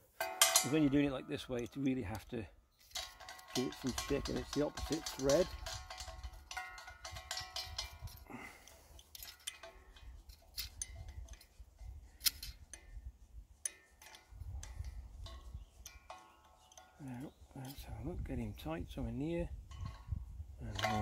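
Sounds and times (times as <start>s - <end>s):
metallic spanner clicks: 2.8s - 11.5s, 12.2s - 12.9s.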